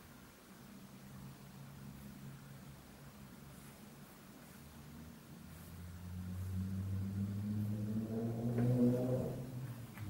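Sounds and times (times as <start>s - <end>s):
low engine-like drone: 4.9s - 10.0s.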